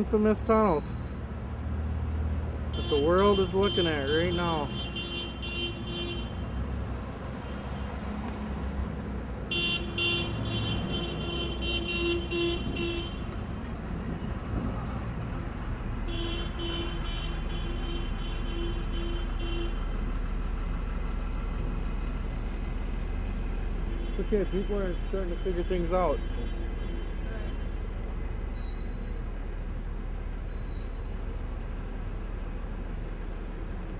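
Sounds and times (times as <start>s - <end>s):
street and vehicle rumble: 0.0s - 33.9s.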